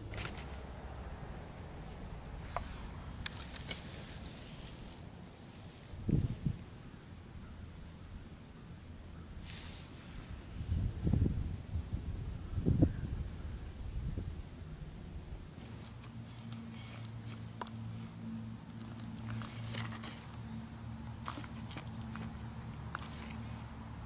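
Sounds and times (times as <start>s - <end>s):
wind on microphone: 6.0s - 6.7s, 10.3s - 14.5s.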